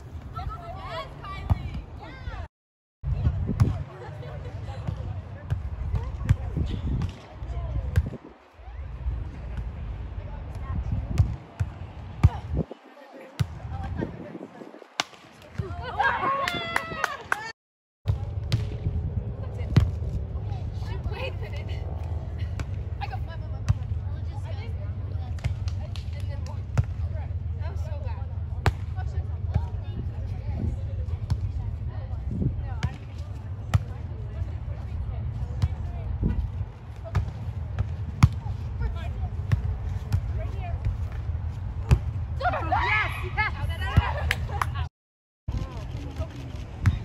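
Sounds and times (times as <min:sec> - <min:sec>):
steady low rumble: 0:18.1 - 0:42.4.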